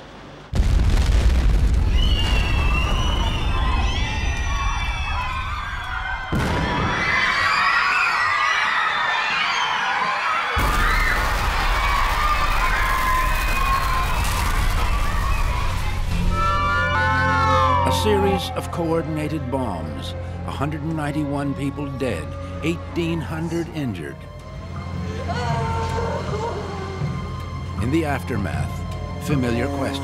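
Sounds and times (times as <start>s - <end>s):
people screaming and shouting: 1.9s - 19.1s, 24.4s - 27.4s.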